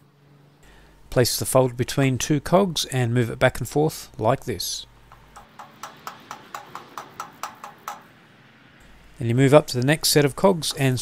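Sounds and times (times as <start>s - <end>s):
freewheel ratchet clicking: 5.1s - 8.1s.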